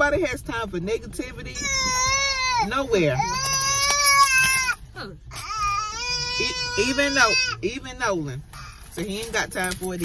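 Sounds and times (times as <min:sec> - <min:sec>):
small child crying: 0:01.6 - 0:07.6.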